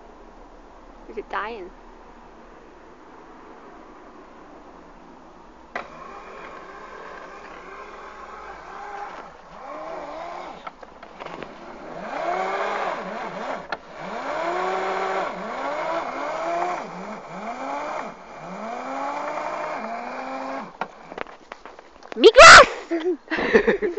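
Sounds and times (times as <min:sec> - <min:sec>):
electric motor whining: 0:05.8 - 0:10.8, 0:11.8 - 0:21.2.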